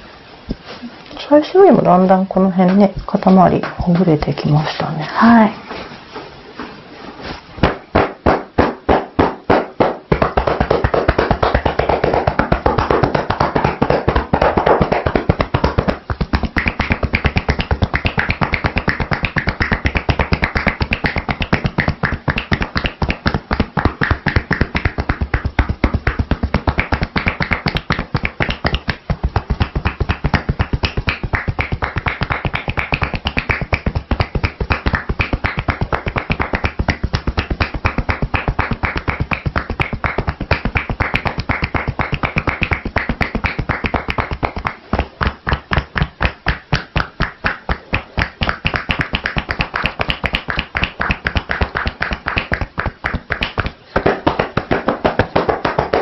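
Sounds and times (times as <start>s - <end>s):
hands patting in percussion massage: 1.6s - 4.7s, 5.7s - 56.0s.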